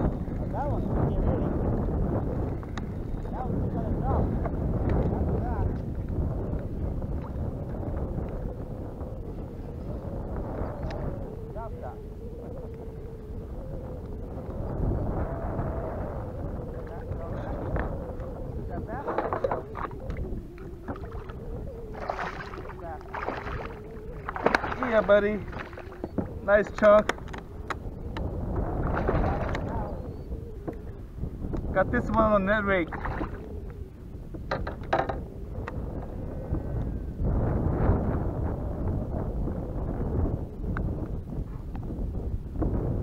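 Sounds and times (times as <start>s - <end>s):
water around kayak: 0.0s - 43.0s
wind on microphone: 0.0s - 43.0s
faint wavering hum: 6.8s - 26.6s.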